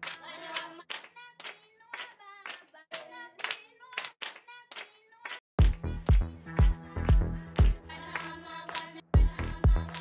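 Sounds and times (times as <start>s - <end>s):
hand claps: 0.0s - 10.0s
children's choir chanting: 7.9s - 10.0s.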